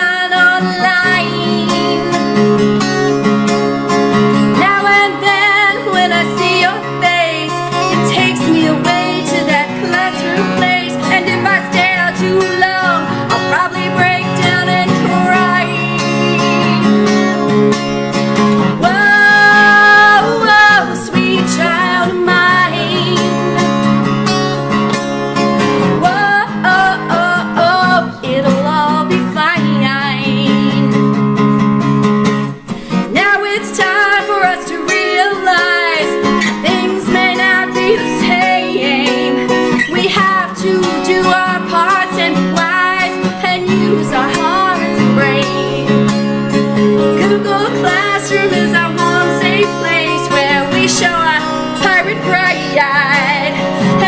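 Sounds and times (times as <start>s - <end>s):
woman singing: 0.0s - 3.1s, 4.3s - 17.4s, 18.4s - 23.9s, 25.8s - 31.1s, 32.8s - 54.0s
strummed acoustic guitar: 0.0s - 54.0s.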